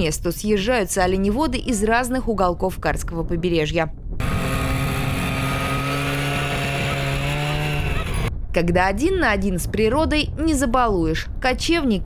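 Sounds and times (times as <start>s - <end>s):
small engine running steadily: 4.2s - 8.3s.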